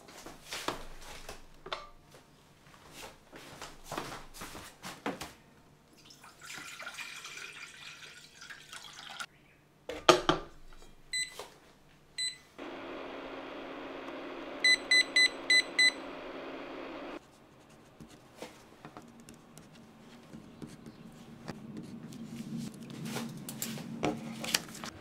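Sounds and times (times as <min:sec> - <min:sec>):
water pouring into metal pot: 0:06.0 - 0:09.3
control panel beeps: 0:12.2 - 0:12.4, 0:14.6 - 0:16.9
cooker running noise: 0:12.6 - 0:17.2.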